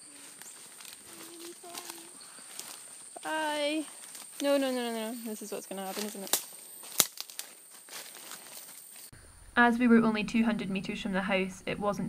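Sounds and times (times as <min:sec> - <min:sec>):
footsteps crunching dry leaves: 0:00.0 - 0:09.1.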